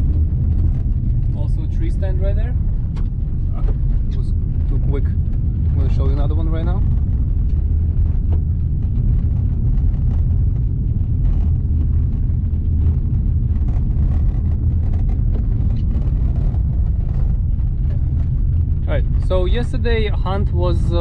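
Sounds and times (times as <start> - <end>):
car engine and tyres rumbling: 0.0 - 21.0
gravel ticks: 0.0 - 21.0.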